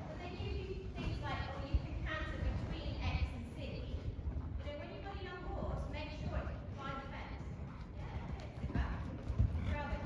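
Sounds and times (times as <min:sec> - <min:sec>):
horse hooves cantering on soft ground: 0:00.0 - 0:10.0.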